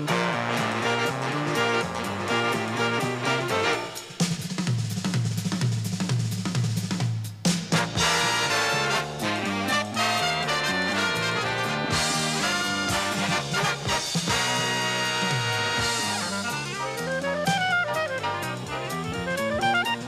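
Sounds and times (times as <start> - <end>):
bass line: 0.0 - 4.0, 7.7 - 20.0
big band with saxophones and brass: 0.0 - 20.0
drum kit break: 0.0 - 20.0.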